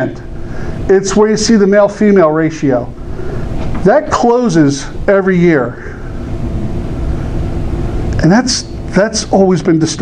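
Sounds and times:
faint hum: 0.0 - 10.0
low room rumble: 0.0 - 10.0.

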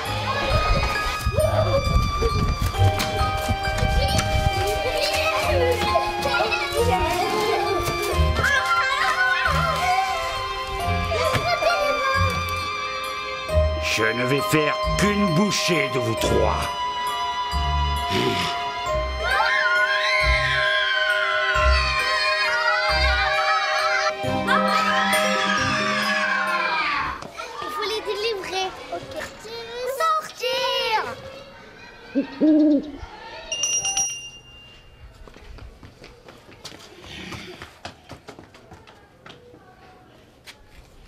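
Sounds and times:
faint children's voices: 0.0 - 13.4, 17.0 - 33.8, 34.9 - 41.0
background music: 0.0 - 27.3
shuffling footsteps: 0.4 - 12.6, 34.7 - 41.0
children screaming: 4.9 - 10.4, 19.2 - 29.2
high chime: 10.8 - 27.2, 33.5 - 35.2.

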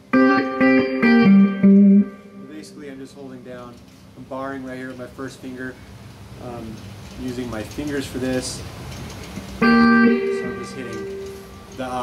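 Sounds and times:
electric guitar blues lick: 0.0 - 2.8, 9.6 - 11.7.

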